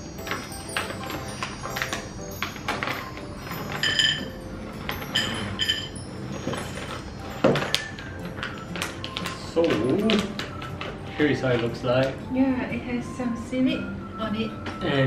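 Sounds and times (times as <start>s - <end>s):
background music with bell notes: 0.0s - 15.0s
plastic packet rustling: 6.0s - 12.2s.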